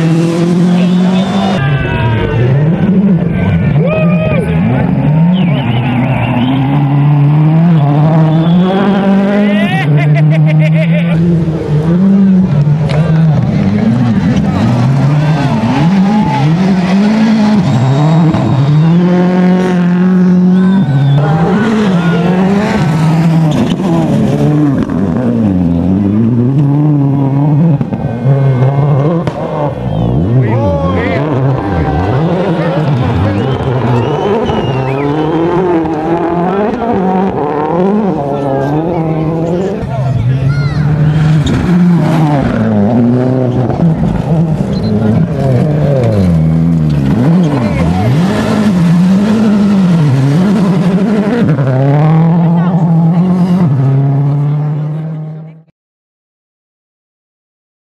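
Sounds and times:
rally car engines revving: 0.0s - 55.7s.

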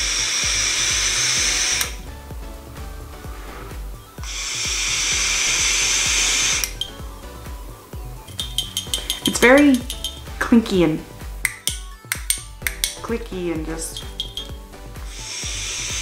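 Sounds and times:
vape draw hissing: 0.0s - 2.0s, 3.1s - 7.4s, 15.0s - 16.0s
background music: 0.0s - 16.0s.

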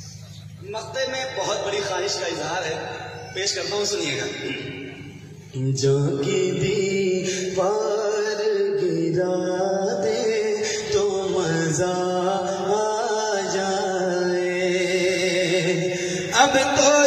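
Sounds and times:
man singing into a microphone: 3.6s - 17.0s.

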